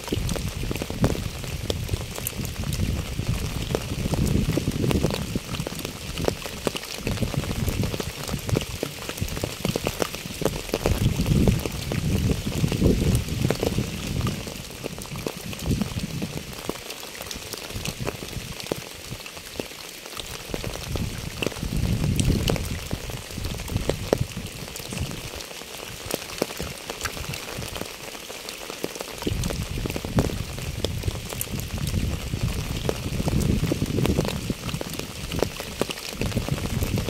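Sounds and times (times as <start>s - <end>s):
rain pattering on asphalt: 0.0s - 37.0s.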